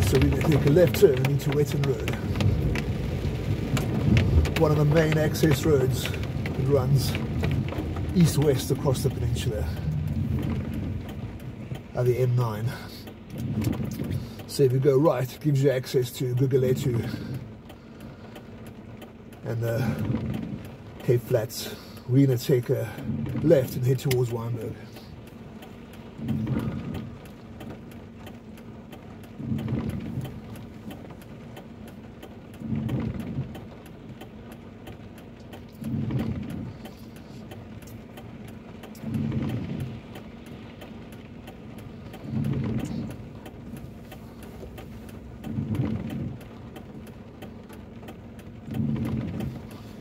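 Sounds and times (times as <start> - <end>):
car engine idling: 0.0 - 50.0
windscreen wipers swishing: 0.0 - 50.0.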